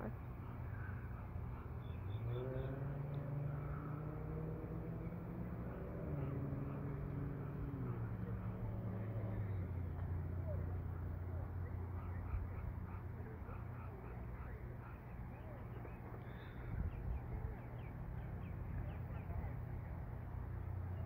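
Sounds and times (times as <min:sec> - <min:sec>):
engine humming: 0:00.0 - 0:21.0.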